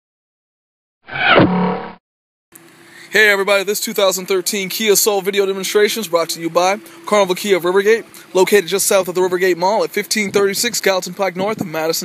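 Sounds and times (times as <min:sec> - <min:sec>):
faint outdoor background: 0:01.1 - 0:12.0.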